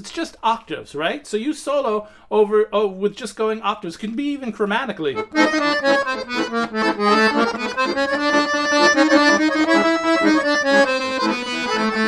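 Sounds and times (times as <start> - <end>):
piano accordion solo: 5.2 - 12.0.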